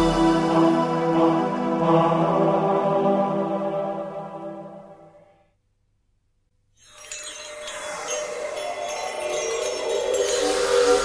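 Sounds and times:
twinkling shimmering chimes: 0:06.7 - 0:11.0.

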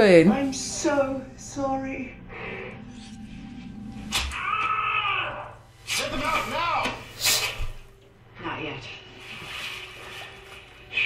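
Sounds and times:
high held wailing cry: 0:02.1 - 0:05.7.

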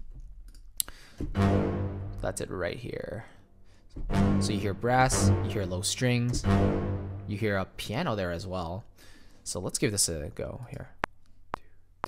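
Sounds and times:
click: 0:00.5 - 0:01.0
low orchestral hit: 0:01.2 - 0:02.6, 0:04.0 - 0:08.2.

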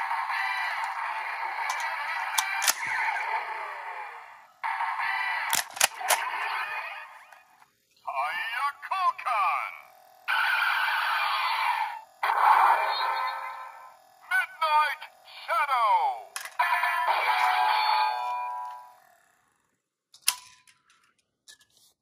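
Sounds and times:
toy electronic music and effects: 0:00.0 - 0:19.2
sharp plastic clicks: 0:01.6 - 0:03.0, 0:05.5 - 0:06.3.

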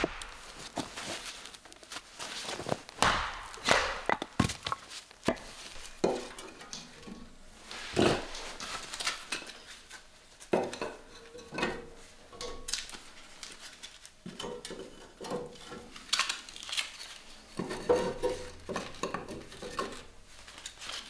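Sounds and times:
firewood sticks knocking: 0:00.0 - 0:00.9, 0:03.0 - 0:06.4.

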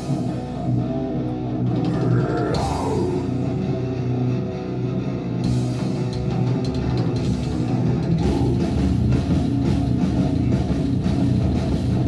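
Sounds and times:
live heavy rock band: 0:00.0 - 0:12.0.

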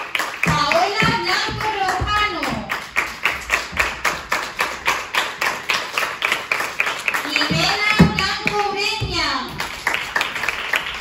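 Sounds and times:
audience clapping: 0:00.0 - 0:11.0
dull thump: 0:07.5 - 0:09.8.

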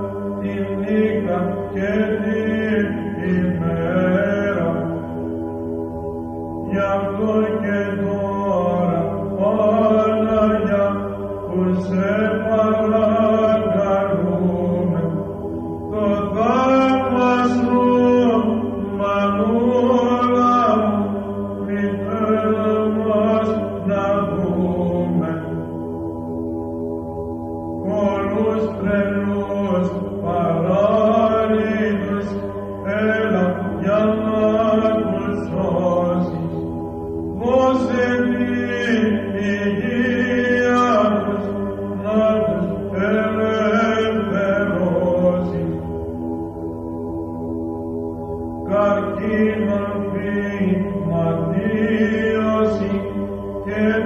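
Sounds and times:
low drone note: 0:00.0 - 0:54.0
voices chanting a hymn: 0:00.0 - 0:54.0.

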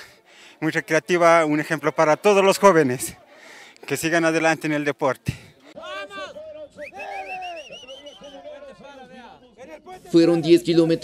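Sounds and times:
people calling out and chattering: 0:00.0 - 0:11.0.

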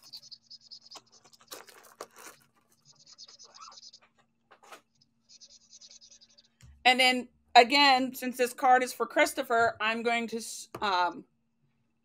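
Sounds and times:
paper and plastic rustling: 0:00.9 - 0:02.9.

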